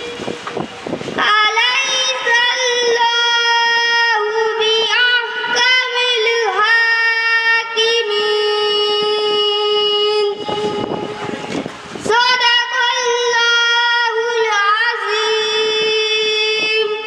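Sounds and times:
boy reciting melodically into microphone: 0.0s - 17.0s.

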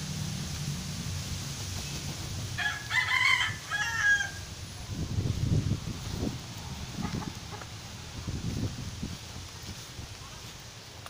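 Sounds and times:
rooster crowing: 2.6s - 4.5s.

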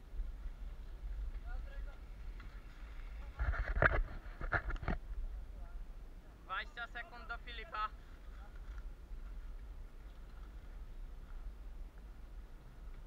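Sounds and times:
wind and trail rumble: 0.0s - 13.0s.

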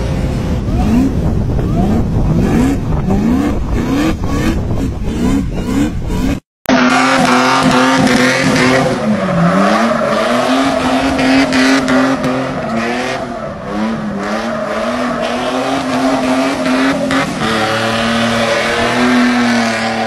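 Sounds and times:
car engine revving hard: 0.7s - 20.0s
tire squeal: 0.7s - 20.0s.

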